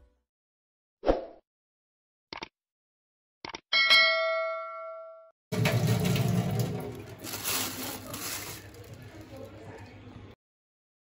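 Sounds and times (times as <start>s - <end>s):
bell ding: 3.8s - 5.3s.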